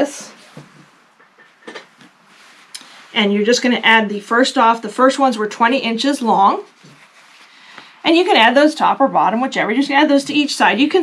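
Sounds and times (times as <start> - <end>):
soft fabric rustles: 0.0 - 8.7.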